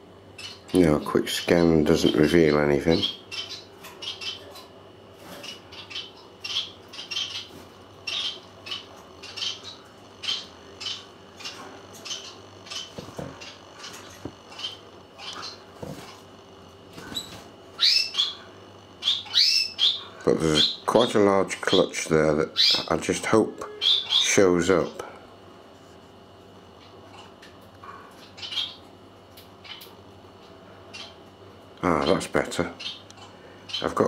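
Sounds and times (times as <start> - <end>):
faint steady hum: 0.0 - 34.0
small bird chirping: 0.3 - 0.8, 1.4 - 16.3, 17.0 - 20.9, 22.5 - 23.0, 23.7 - 24.4, 28.1 - 31.2, 32.8 - 34.0.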